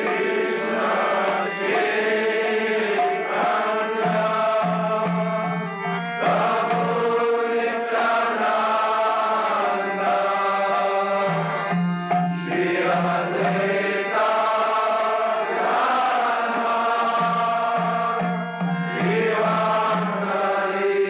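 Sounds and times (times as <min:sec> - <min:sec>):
voices chanting in long notes: 0:00.0 - 0:21.0.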